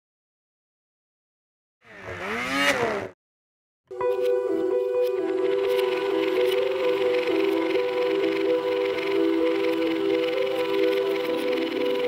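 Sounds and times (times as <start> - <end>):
engine revving: 1.8 - 3.2.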